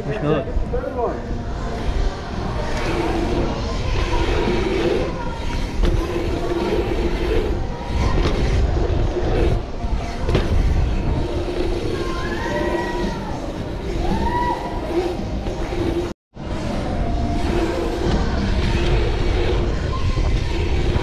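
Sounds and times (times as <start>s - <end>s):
wind rumble on microphone: 0.0s - 21.0s
freewheeling hub buzz: 1.2s - 21.0s.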